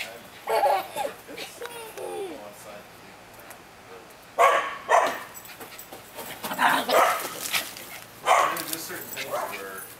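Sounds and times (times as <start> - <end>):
small dog barking: 4.4 - 5.4, 6.7 - 7.4, 8.2 - 8.7.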